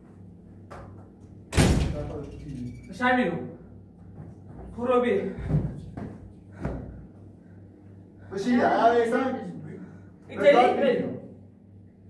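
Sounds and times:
sharp loud bang: 1.5s - 2.3s.

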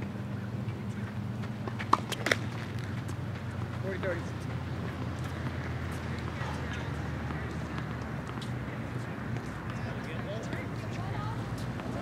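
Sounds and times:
faint indistinct voices: 5.2s - 12.0s.

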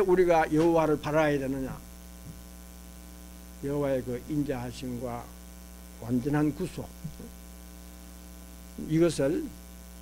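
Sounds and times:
man speaking: 0.0s - 1.9s, 3.6s - 5.4s, 6.0s - 7.3s, 8.8s - 9.6s
electrical mains hum: 0.0s - 10.0s.

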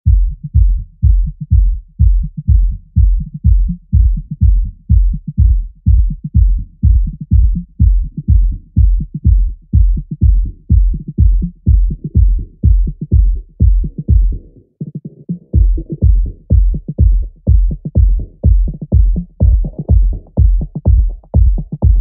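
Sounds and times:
kick drum: 0.0s - 14.6s, 15.4s - 22.0s
bass line: 0.1s - 22.0s.

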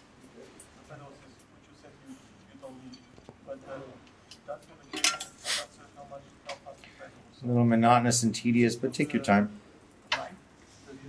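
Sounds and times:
metal bolts clicking and clinking: 4.9s - 5.3s.

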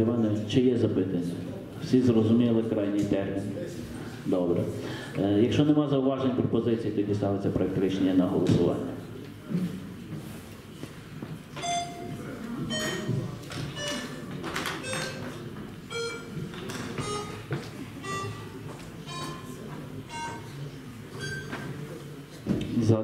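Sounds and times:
low murmur of hall: 0.0s - 23.0s
short electronic notes: 11.6s - 21.7s.

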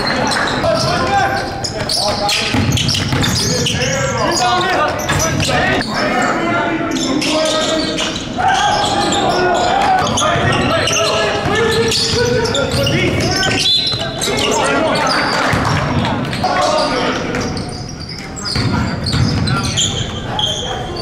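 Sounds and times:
players calling out: 0.0s - 21.0s.

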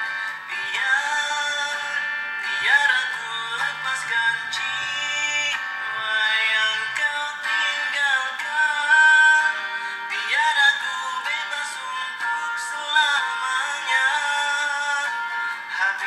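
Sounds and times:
pop song with singing: 0.0s - 16.0s.

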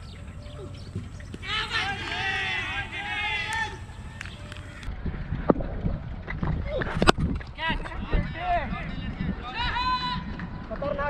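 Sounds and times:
open-air background noise: 0.0s - 11.0s
long high-pitched shout: 1.4s - 4.2s.

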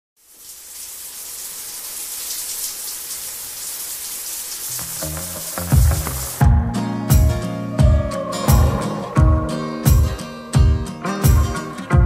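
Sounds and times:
steady high hiss: 0.2s - 6.4s.

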